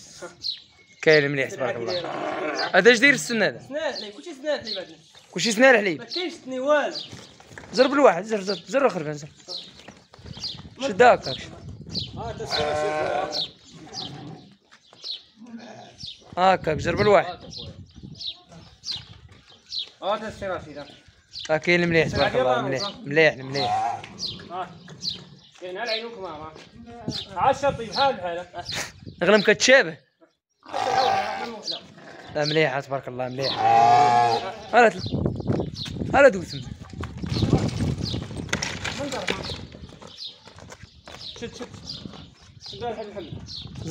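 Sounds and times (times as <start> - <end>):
sheep bleating: 1.6 - 2.8, 12.3 - 14.5, 23.5 - 24.1, 30.6 - 31.8, 33.4 - 34.8.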